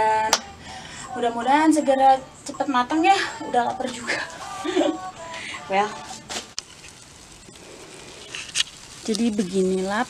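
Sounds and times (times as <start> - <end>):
meat sizzling on foil: 3.9 - 10.0
person laughing breathily: 4.1 - 5.6.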